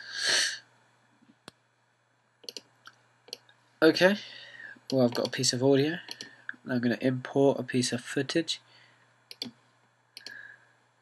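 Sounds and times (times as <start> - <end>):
computer mouse clicks: 2.4 - 2.7, 4.9 - 5.4, 6.1 - 6.4, 9.3 - 9.6, 10.2 - 10.4.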